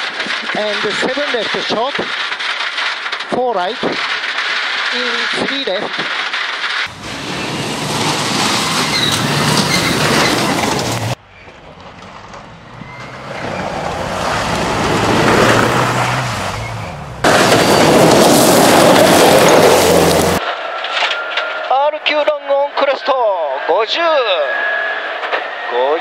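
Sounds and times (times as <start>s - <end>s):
tyres on loose gravel: 0.0s - 21.6s.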